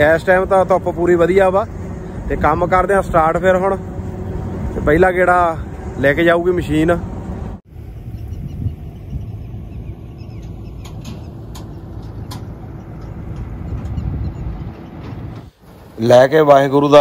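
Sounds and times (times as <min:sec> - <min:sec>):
combine harvester engine rumbling: 0:00.0 - 0:17.0.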